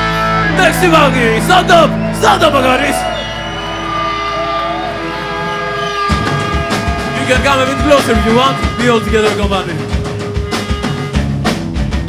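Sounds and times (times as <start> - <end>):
electric guitars droning: 0.0 - 12.0
low amp hum: 0.0 - 12.0.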